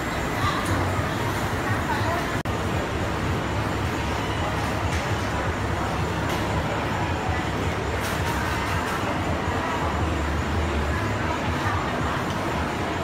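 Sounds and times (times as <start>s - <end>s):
indistinct background chatter: 0.0s - 13.0s.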